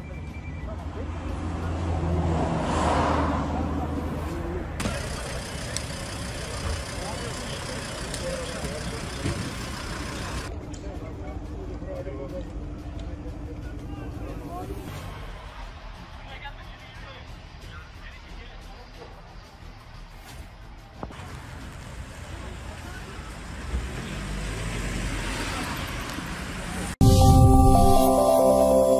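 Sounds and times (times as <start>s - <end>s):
people talking outdoors: 0.0s - 27.0s
vehicle driving past: 0.9s - 10.5s, 21.4s - 27.0s.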